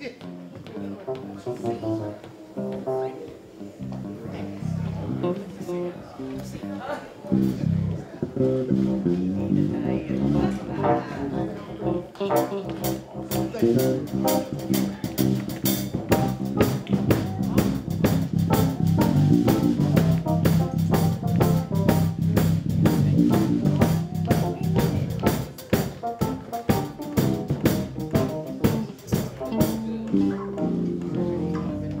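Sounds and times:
drum kit beat: 0:00.0 - 0:04.0, 0:11.8 - 0:32.0
electric guitar: 0:00.0 - 0:32.0
keyboard: 0:00.0 - 0:32.0
electric bass: 0:01.0 - 0:32.0.

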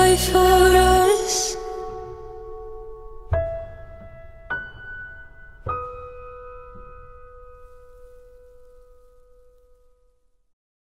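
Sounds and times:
piano chord ringing out: 0:00.0 - 0:10.2.

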